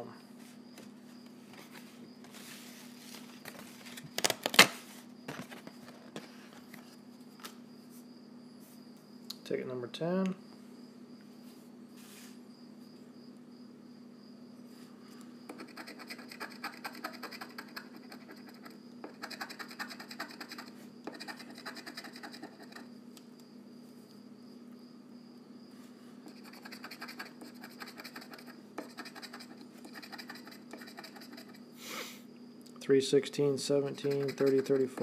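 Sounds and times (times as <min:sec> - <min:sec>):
scratch-off ticket being scratched: 0:15.5 - 0:22.9, 0:26.3 - 0:31.6, 0:33.8 - 0:35.0.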